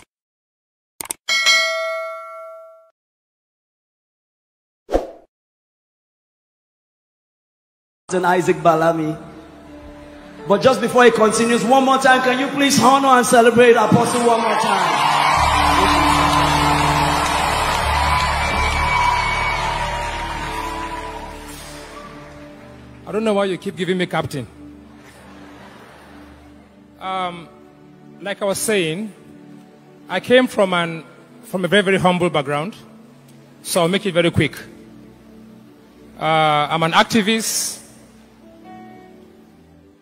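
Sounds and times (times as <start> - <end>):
notification bell ding: 1.3 - 2.9
church music with bass notes: 8.1 - 39.9
congregation cheering and whooping: 13.7 - 22.8.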